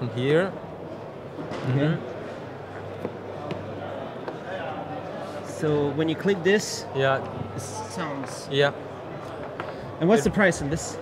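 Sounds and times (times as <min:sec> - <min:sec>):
trade hall background noise: 0:00.0 - 0:11.0.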